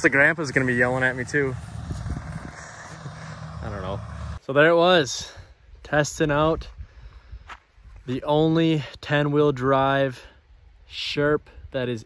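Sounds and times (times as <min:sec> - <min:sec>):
distant diesel engine drone: 0:00.0 - 0:04.4.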